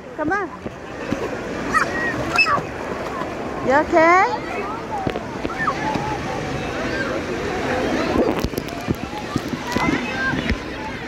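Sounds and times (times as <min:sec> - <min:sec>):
water splashing: 0:00.2 - 0:11.0
distant voices and shouts: 0:01.6 - 0:03.6, 0:04.4 - 0:08.2.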